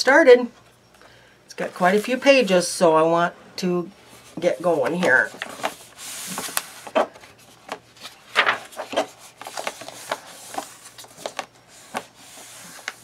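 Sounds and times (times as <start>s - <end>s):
paper rustling and rubbing: 4.1s - 13.0s
book pages turning: 4.3s - 13.0s.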